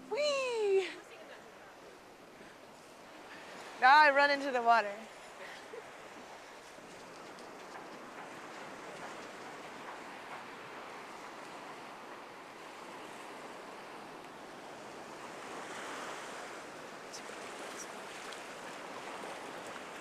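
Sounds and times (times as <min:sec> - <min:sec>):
waves breaking on beach: 0:00.0 - 0:20.0.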